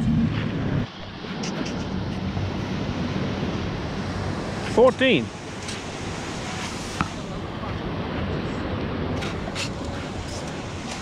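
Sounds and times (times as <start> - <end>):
wind on microphone: 0.0 - 4.7
beach surf: 0.0 - 11.0.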